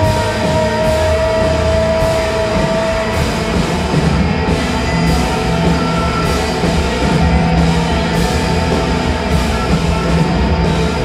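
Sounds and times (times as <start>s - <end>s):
rock band with brass section: 0.0s - 11.0s.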